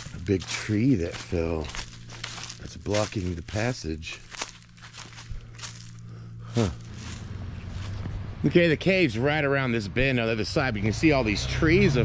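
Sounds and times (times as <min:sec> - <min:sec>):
faint rustle: 0:00.0 - 0:08.2
steady low hum: 0:00.0 - 0:10.8
man saying huh: 0:06.5 - 0:06.8.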